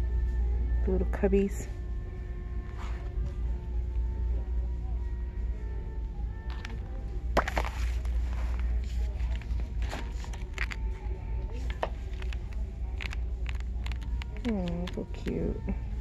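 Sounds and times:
steady low hum: 0.0s - 16.0s
book pages crinkling and clicking: 6.5s - 6.8s, 7.4s - 10.9s, 11.5s - 15.4s.

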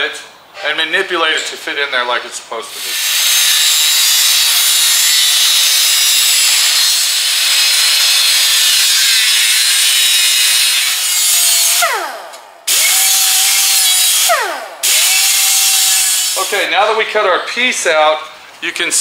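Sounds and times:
power cutter grinding through steel: 2.7s - 16.7s.

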